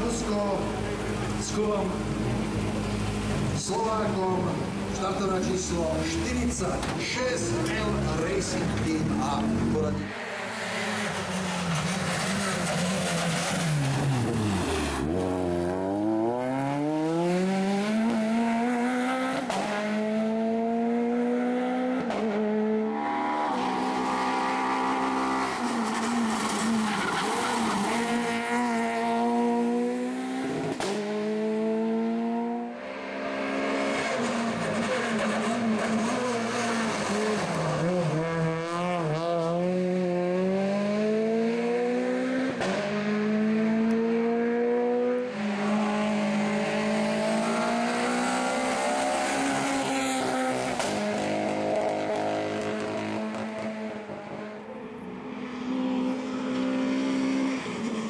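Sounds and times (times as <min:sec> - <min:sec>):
car engine revving hard: 0:07.5 - 0:54.4, 0:55.7 - 0:58.0.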